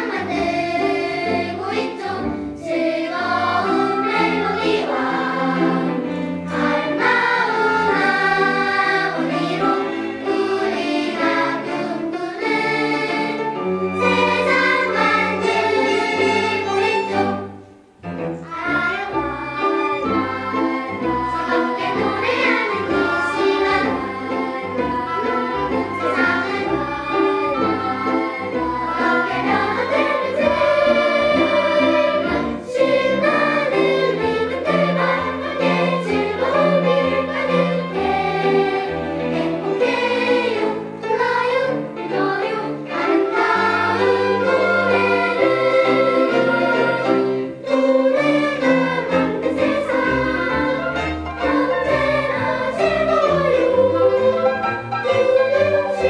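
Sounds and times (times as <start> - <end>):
children's choir singing: 0.0 - 56.0
instrumental accompaniment: 0.0 - 56.0
violins and cello: 0.0 - 56.0.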